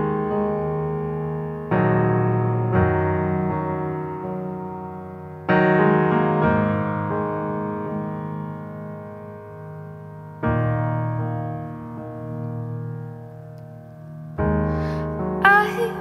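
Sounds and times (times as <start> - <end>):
grand piano chords: 0.0 - 16.0.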